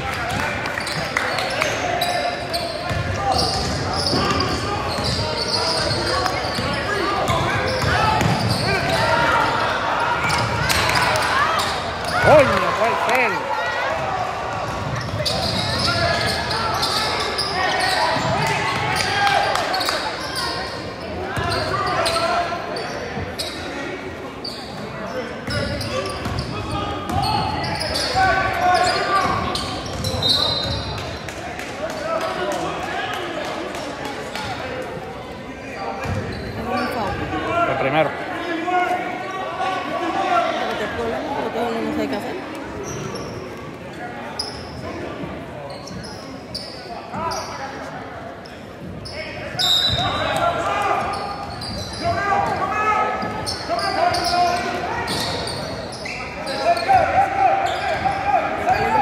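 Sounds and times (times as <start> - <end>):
spectators chattering: 0.0 - 59.0
sneaker squeaks: 0.3 - 9.4, 10.2 - 12.9, 14.7 - 31.1, 35.6 - 37.4, 42.6 - 59.0.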